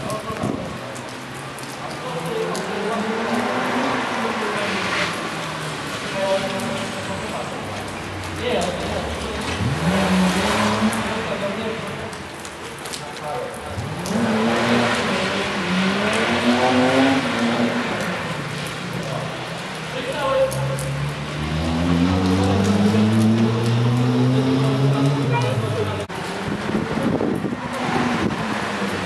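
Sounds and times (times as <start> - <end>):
rally car engine accelerating: 9.4 - 11.3, 13.7 - 19.0, 20.5 - 25.4.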